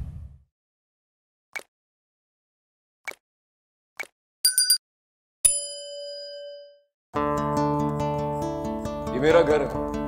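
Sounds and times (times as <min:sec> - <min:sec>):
notification bell ding: 0:04.5 - 0:04.8, 0:05.5 - 0:06.8.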